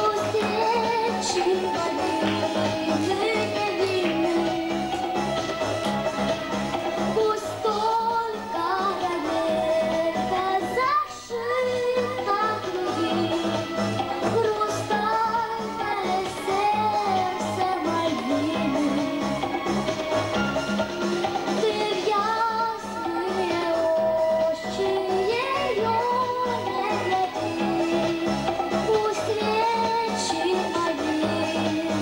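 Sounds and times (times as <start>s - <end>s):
girl singing into a microphone: 0.0s - 5.0s, 7.1s - 19.4s, 21.6s - 28.2s, 28.8s - 32.0s
backing track with steady beat: 0.0s - 32.0s.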